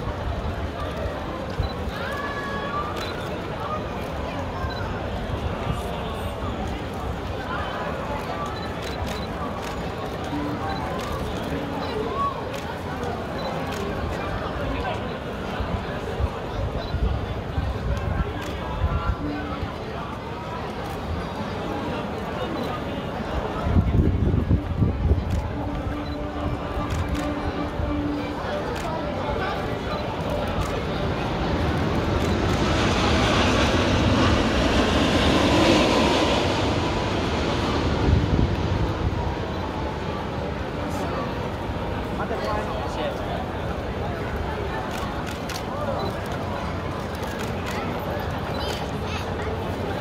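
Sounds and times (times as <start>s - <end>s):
crowd chatter: 0.0s - 50.0s
passing vehicle rumble: 30.1s - 42.4s.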